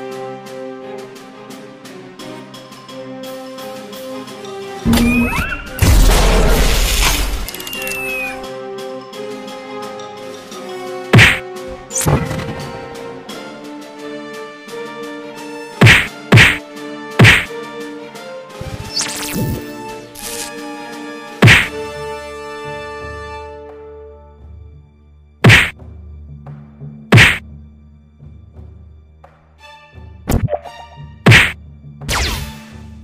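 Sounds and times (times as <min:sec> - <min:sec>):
background music: 0:00.0 - 0:33.0
sharp hit: 0:04.9 - 0:07.5, 0:11.2 - 0:11.4, 0:15.8 - 0:16.6, 0:17.2 - 0:17.5, 0:21.4 - 0:21.8, 0:25.4 - 0:25.7, 0:27.1 - 0:27.4
loud punch impact: 0:05.8 - 0:07.1, 0:11.2 - 0:11.4, 0:15.8 - 0:16.6, 0:17.2 - 0:17.5, 0:21.4 - 0:21.8, 0:25.4 - 0:25.7, 0:27.1 - 0:27.4, 0:31.3 - 0:31.6
heavy thuds: 0:15.8 - 0:16.6, 0:17.2 - 0:17.5, 0:25.5 - 0:25.7, 0:27.2 - 0:27.4.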